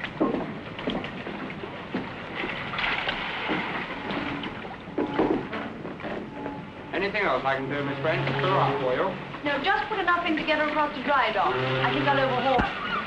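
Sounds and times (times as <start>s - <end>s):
splashes and knocks: 0.0s - 6.3s
water lapping around boat: 0.0s - 13.0s.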